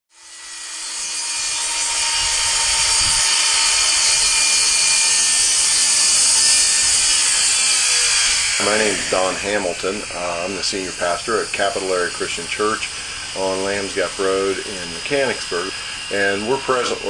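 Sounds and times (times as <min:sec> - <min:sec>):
circular saw cutting wood: 0:00.1 - 0:17.0.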